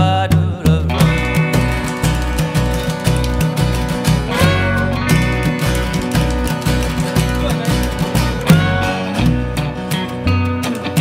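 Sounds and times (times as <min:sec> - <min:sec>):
roots band playing: 0:00.0 - 0:11.0.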